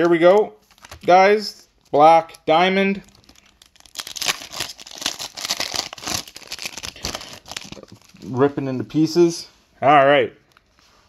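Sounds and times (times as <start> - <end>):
foil wrapper tearing and crinkling: 3.0 - 8.3.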